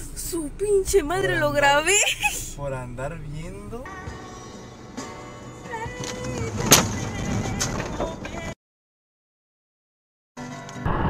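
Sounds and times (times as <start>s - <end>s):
car road rumble: 0.0s - 8.6s.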